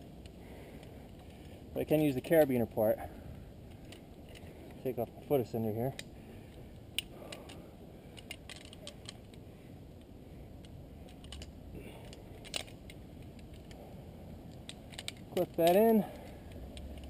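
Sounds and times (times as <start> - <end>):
metallic clicks of climbing hardware: 3.7 - 9.4, 10.0 - 13.8, 14.5 - 17.0.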